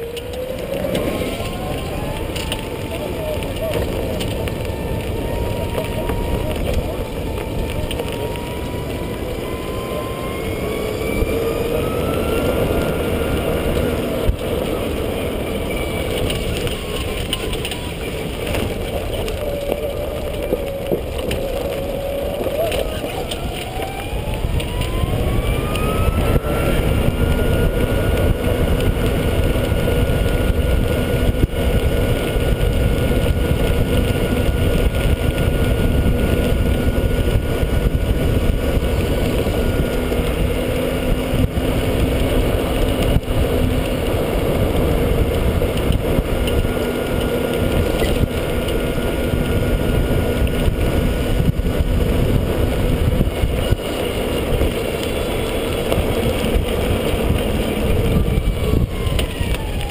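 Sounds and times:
golf cart drive whine: 0:00.0 - 0:59.9
low rumble of tyres and wind: 0:00.0 - 0:59.9.

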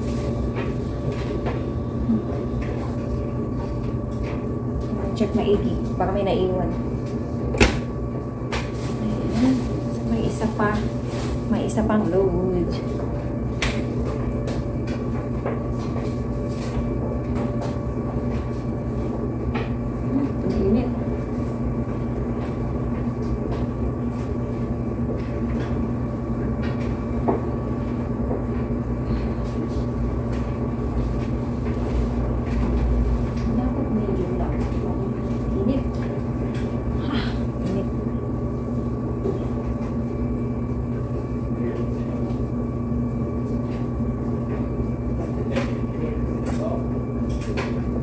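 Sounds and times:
electrical hum: 0:00.0 - 0:48.0
laundry machines rumbling: 0:00.0 - 0:48.0.

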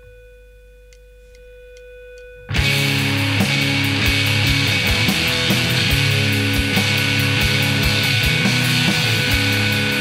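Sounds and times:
held note of rock song: 0:02.5 - 0:10.0.

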